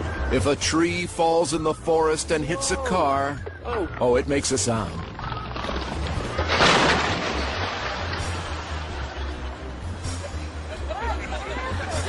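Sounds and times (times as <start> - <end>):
tree crashing onto car: 5.5 - 8.9.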